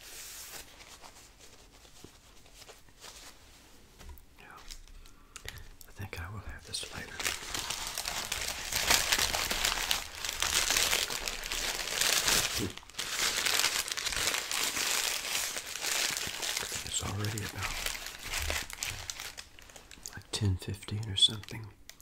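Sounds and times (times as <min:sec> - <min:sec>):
paper wrapper crinkling: 0:04.4 - 0:22.0.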